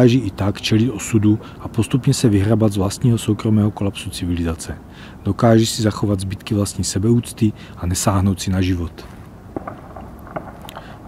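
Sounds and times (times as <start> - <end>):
low wind rumble on microphone: 0.0 - 11.0
faint clicks: 9.0 - 11.0.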